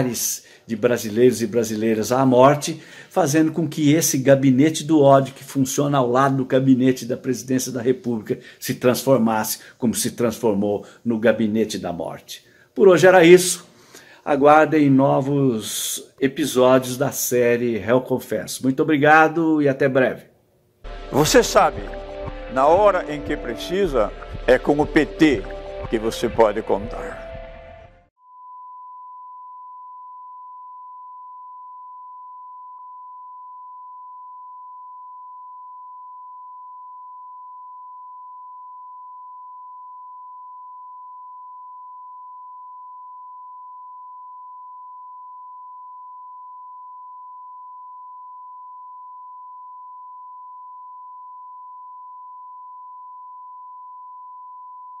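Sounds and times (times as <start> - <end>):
steady sine reference tone: 28.2 - 55.0.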